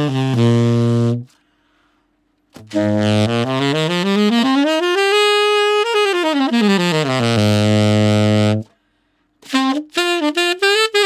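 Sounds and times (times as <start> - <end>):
saxophone low notes: 0.0 - 1.5, 2.5 - 8.8, 9.4 - 11.0.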